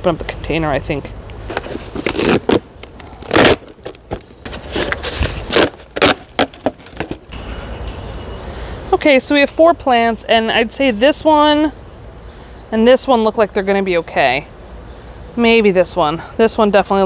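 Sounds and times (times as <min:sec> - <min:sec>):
plastic crinkling and scraping: 0:01.5 - 0:07.3.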